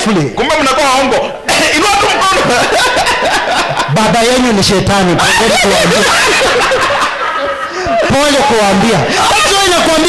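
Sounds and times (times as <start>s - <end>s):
men laughing into microphones: 1.6s - 4.5s, 5.2s - 10.0s
speech: 3.9s - 6.1s, 7.9s - 10.0s.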